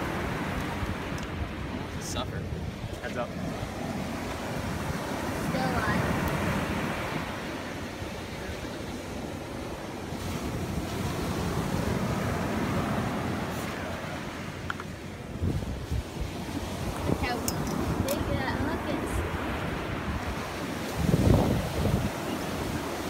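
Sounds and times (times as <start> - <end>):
ocean surf washing onto beach: 0.0 - 23.0
wind buffeting microphone: 0.0 - 23.0.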